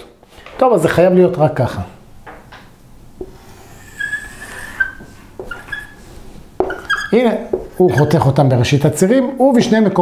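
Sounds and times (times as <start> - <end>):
whiteboard marker squeaking: 3.2 - 8.2.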